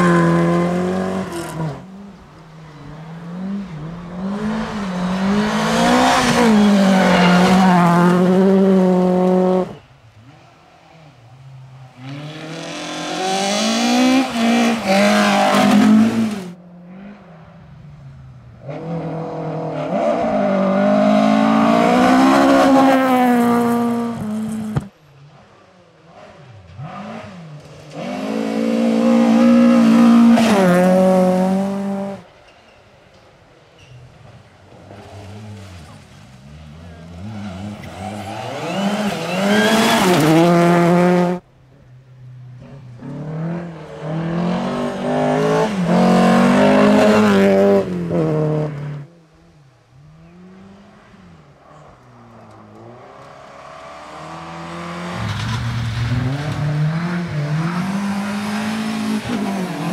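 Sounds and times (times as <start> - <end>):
rally car engines passing: 0.0 - 59.9.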